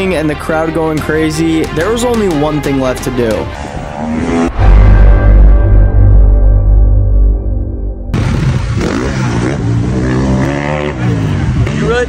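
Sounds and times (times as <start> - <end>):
dirt bike engine revving: 3.9 - 4.7, 8.1 - 12.0.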